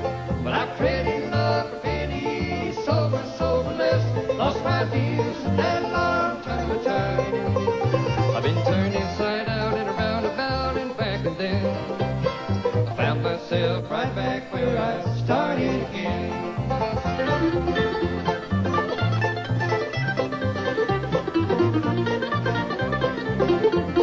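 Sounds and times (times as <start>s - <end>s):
bluegrass band playing: 0.0s - 24.0s.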